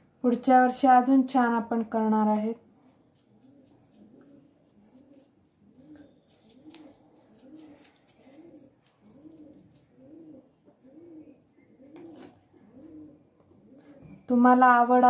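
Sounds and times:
pigeon cooing: 3.2 - 14.3.

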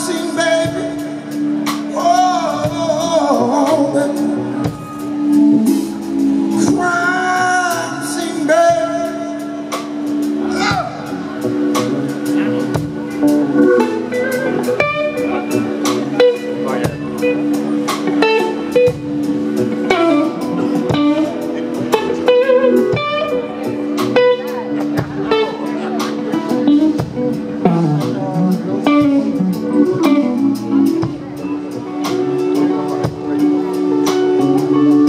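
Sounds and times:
blues band playing: 0.0 - 35.0
electric guitar lead phrases: 0.0 - 35.0.

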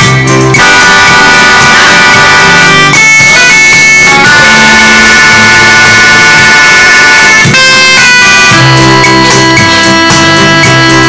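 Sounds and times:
electronic keyboard held chords: 0.0 - 11.0.

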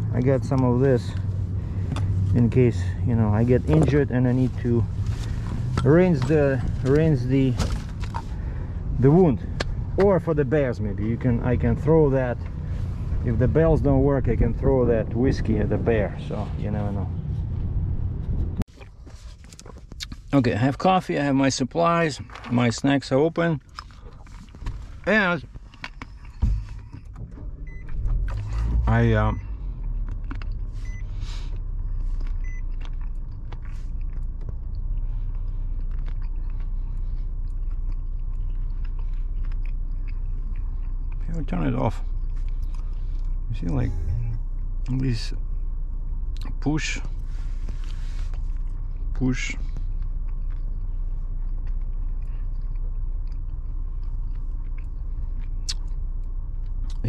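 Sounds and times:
car engine idling: 0.0 - 22.0, 23.4 - 57.0
steady low rumble: 0.0 - 57.0.

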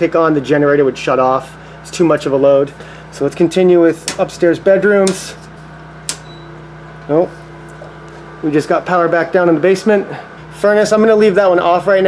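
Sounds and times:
steady low hum: 0.0 - 12.0
circuit breaker click: 4.0 - 4.3, 6.0 - 6.6.

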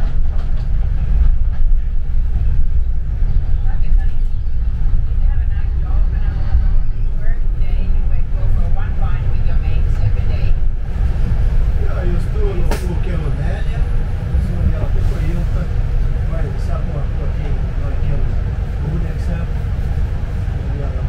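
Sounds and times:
bus rumbling in motion: 0.0 - 21.0.

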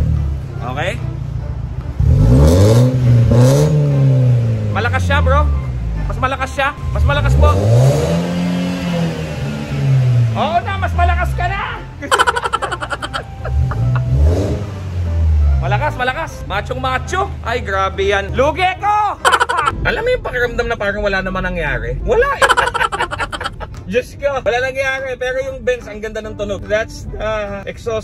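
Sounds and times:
car exhaust idling and revving: 0.0 - 26.3.

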